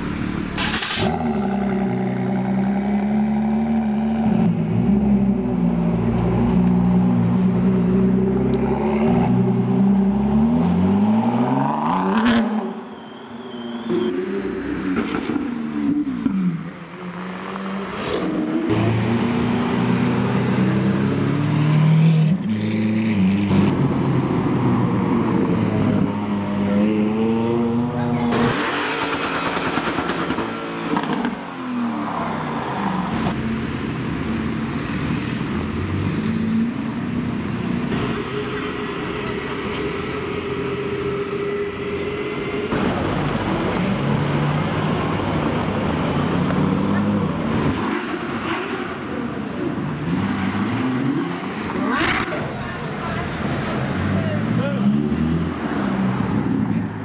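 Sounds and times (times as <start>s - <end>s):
supercar engines revving: 24.4s - 57.0s.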